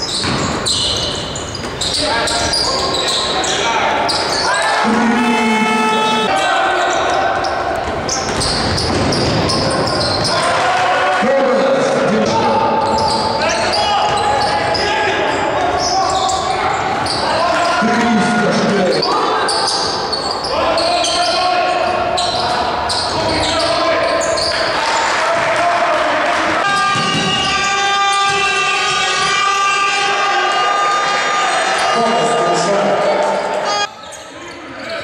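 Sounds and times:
basketball bouncing on court: 0.0 - 1.9, 7.4 - 10.5
players' voices echoing: 0.0 - 35.0
steady multi-pitch tone: 4.9 - 6.3.

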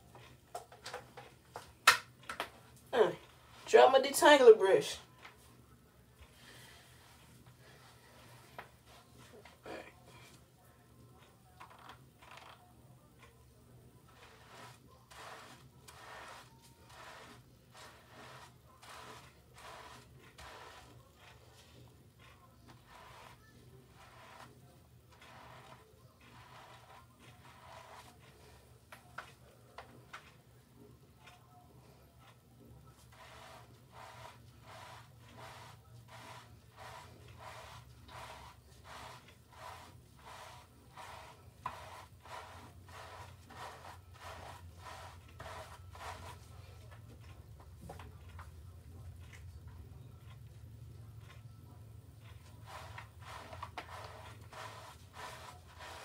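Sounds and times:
fingers scrubbing lather into hair: 14.1 - 21.4, 22.7 - 28.3, 33.1 - 46.4, 52.4 - 56.0.

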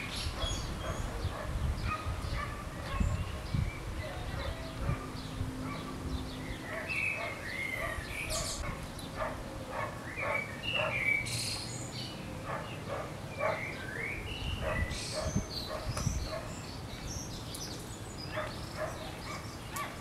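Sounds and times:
birds chirping: 0.0 - 20.0
dog barking: 0.4 - 5.9, 6.7 - 11.0, 12.4 - 13.7, 14.6 - 16.5, 18.3 - 20.0.

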